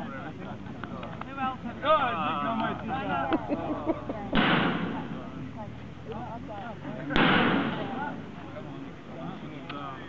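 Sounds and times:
people chatting: 0.0s - 10.0s
sharp bangs with hiss: 4.3s - 5.3s, 7.1s - 8.1s.

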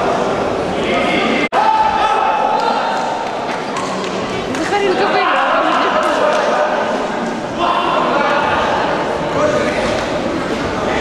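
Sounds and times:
voices echoing in a hall: 0.0s - 11.0s.

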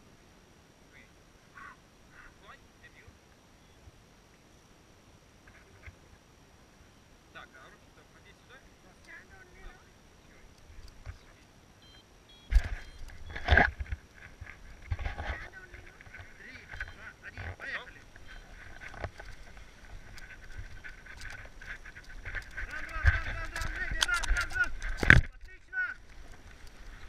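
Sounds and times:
knocks and rustling of straps: 12.5s - 25.4s
faint voices: 15.0s - 26.0s.

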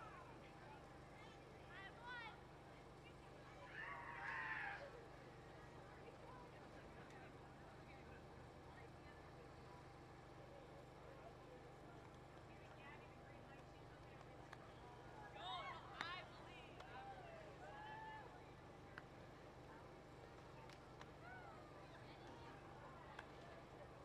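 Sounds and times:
faint voices: 0.0s - 24.0s.

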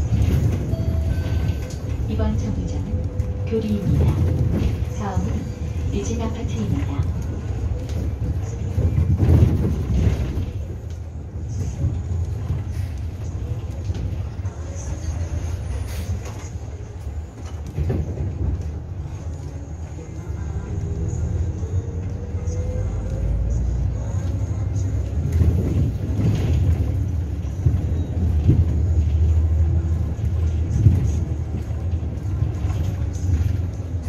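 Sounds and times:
bus engine and road rumble: 0.0s - 34.0s
knocks and rattles from bumps: 6.5s - 10.8s.

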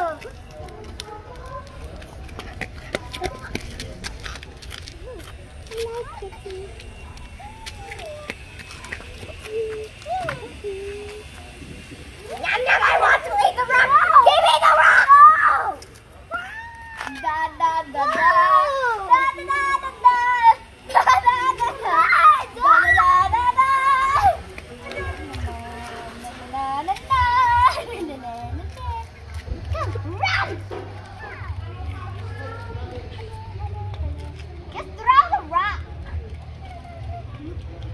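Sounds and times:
children chattering and squealing: 0.0s - 37.9s.

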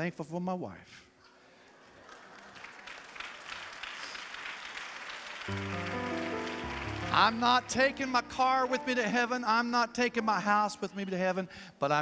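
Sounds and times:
congregation applauding: 1.7s - 9.4s
sustained musical chord: 5.5s - 9.4s.

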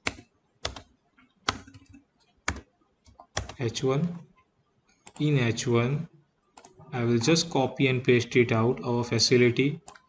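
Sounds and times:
keyboard key presses: 1.5s - 3.6s.

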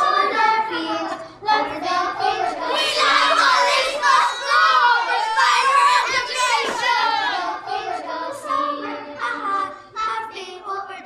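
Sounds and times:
children singing: 0.0s - 11.0s.

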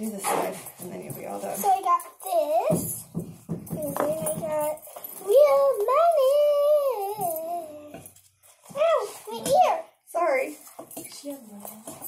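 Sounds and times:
girl singing sing-song: 1.6s - 8.2s.

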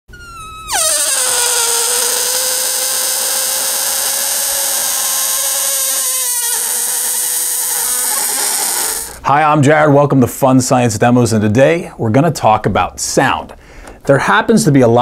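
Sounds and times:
balloon squealing as air escapes: 0.1s - 9.2s.

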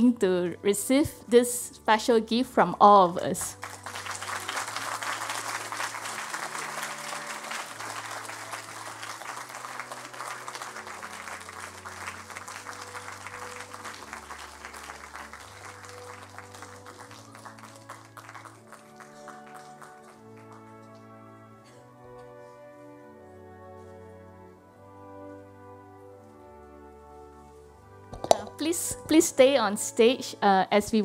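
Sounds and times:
music with low sustained notes: 0.0s - 31.0s
audience applauding: 3.5s - 21.1s.

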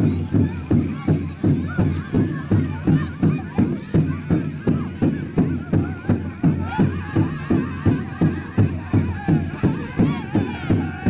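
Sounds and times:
drum struck in steady beat: 0.0s - 11.0s
singers' high wavering voices: 0.0s - 11.0s.

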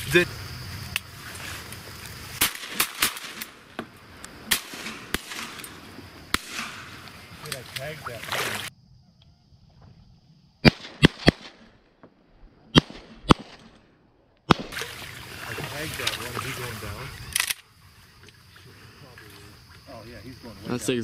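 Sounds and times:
shotguns firing: 2.4s - 3.7s, 4.4s - 7.0s, 10.6s - 11.8s, 12.7s - 13.8s, 14.5s - 15.2s.

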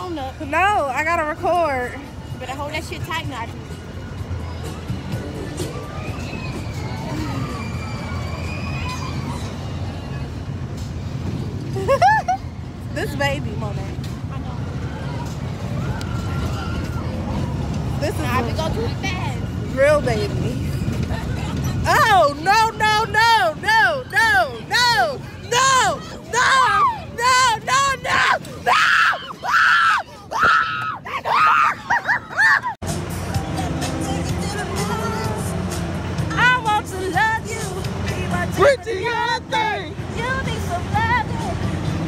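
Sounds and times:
women screaming: 5.7s - 9.7s, 23.4s - 32.8s.

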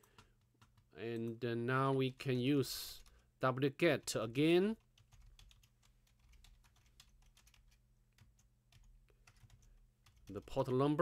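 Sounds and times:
typing on a keyboard: 0.0s - 1.4s, 4.7s - 10.8s.

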